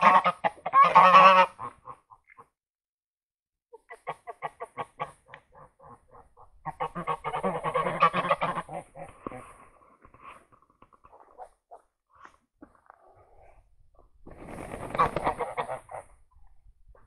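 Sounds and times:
geese honking: 0.0 - 2.0, 3.9 - 9.1.

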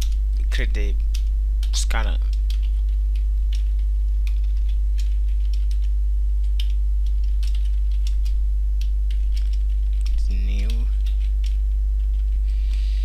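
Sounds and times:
low electrical hum: 0.0 - 13.0
keyboard keys clicking: 1.1 - 12.4.

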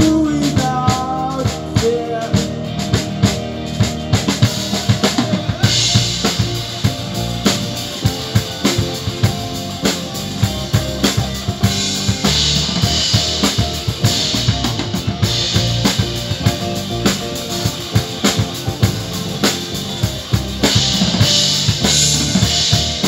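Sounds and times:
drum kit beat: 0.0 - 23.0
electric guitar: 0.0 - 23.0
keyboard: 0.0 - 23.0.

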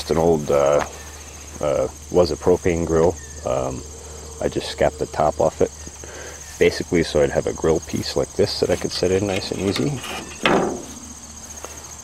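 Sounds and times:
crickets chirping: 0.0 - 12.0
metal grill grate clank: 9.2 - 11.2.

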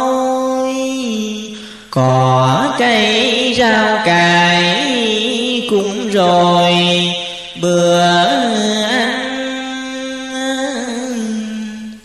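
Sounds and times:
person chanting verse: 0.0 - 12.0.

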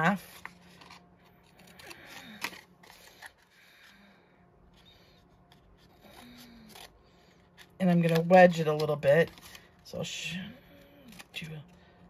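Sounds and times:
faint paper rustling: 0.1 - 12.0.

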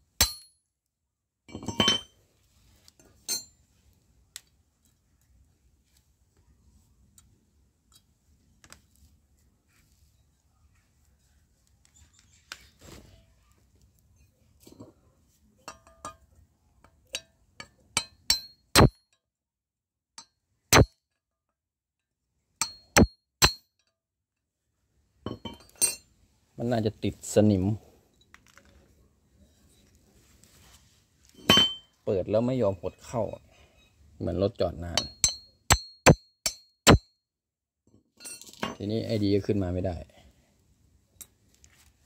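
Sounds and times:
steel rod clanking on metal: 31.4 - 31.9.

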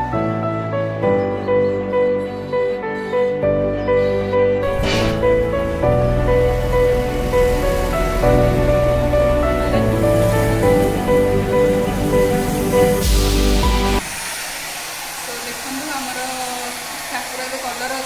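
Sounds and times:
background music with bass: 3.4 - 14.0
hair dryer blowing: 5.5 - 18.0.

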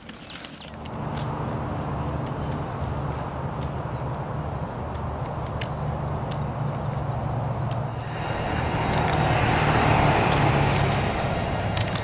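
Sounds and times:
road vehicle passing: 0.8 - 12.0
steady low rumble: 0.9 - 12.0.

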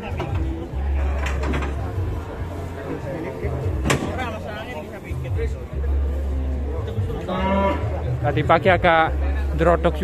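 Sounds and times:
men chattering: 0.0 - 10.0.

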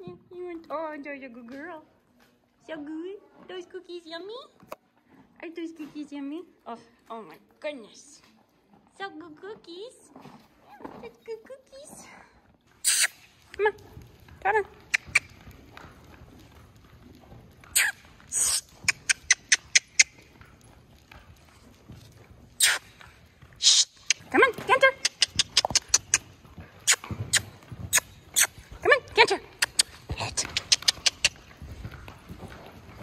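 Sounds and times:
tongue clicks: 12.8 - 13.6, 14.8 - 15.4, 17.8 - 20.2, 22.6 - 23.0, 23.6 - 24.3, 25.0 - 28.6, 29.6 - 31.4
person calling: 23.6 - 24.0.

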